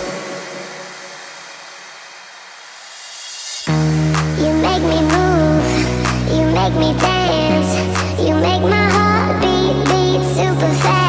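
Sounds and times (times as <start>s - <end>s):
dance music: 0.0s - 2.4s, 3.6s - 11.0s
white noise hiss: 0.0s - 3.7s.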